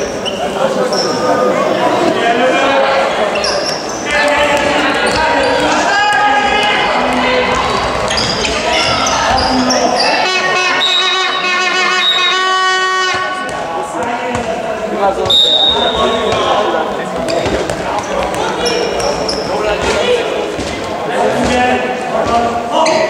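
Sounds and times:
shoes squeaking on court: 0.0 - 1.4, 3.3 - 6.4, 7.5 - 12.3, 15.2 - 21.5, 22.2 - 23.0
players' voices: 0.0 - 23.0
ball bouncing on floor: 17.2 - 19.2.

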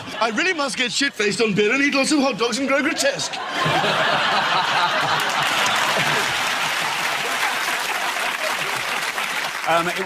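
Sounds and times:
audience applauding: 3.7 - 10.0.

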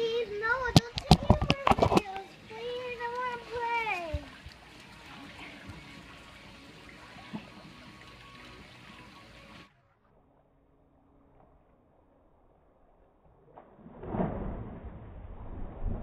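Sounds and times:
water trickling: 0.0 - 9.7.

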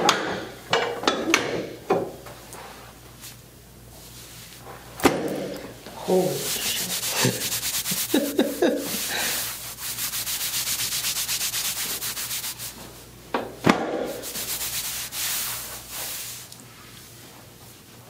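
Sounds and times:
hands rubbing over a t-shirt: 6.3 - 12.9, 14.1 - 16.5.

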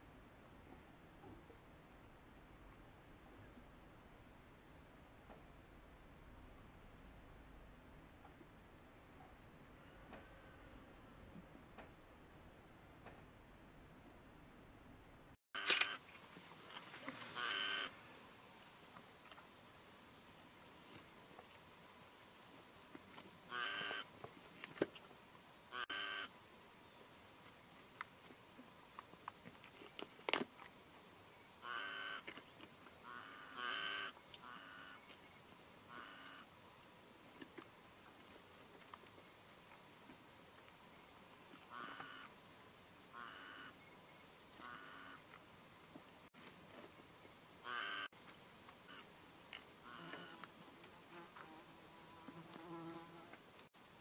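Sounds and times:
faint steady hiss: 15.6 - 54.0
short animal calls: 17.0 - 18.1, 23.5 - 24.1, 25.7 - 26.3, 31.6 - 32.4, 33.0 - 35.1, 35.9 - 36.5, 41.6 - 42.4, 43.1 - 43.8, 44.6 - 45.2, 47.6 - 48.1, 48.8 - 49.1, 49.8 - 50.5
bird harsh cawing calls: 25.7 - 26.3, 47.6 - 48.1.

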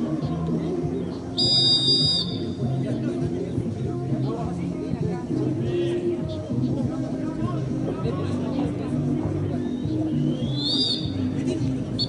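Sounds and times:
referee's whistle blast: 1.4 - 2.4.

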